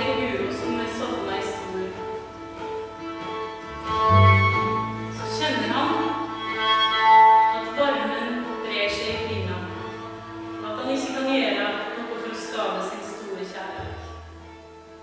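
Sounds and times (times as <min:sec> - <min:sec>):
double bass low notes: 0:00.0 - 0:07.7
fiddle melody: 0:00.0 - 0:15.0.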